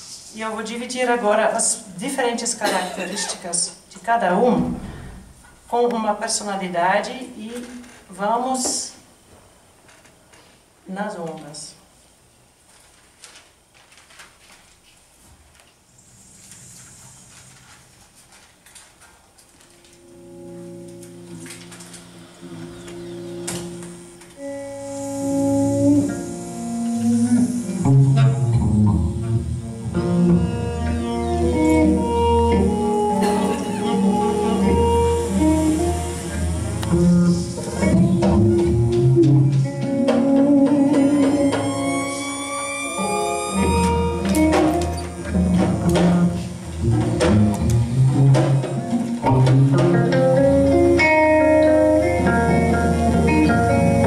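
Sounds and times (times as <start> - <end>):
electric guitar: 19.6 - 54.0
improvised ensemble music: 19.8 - 54.0
high sliding tones: 21.2 - 39.3, 40.4 - 46.6.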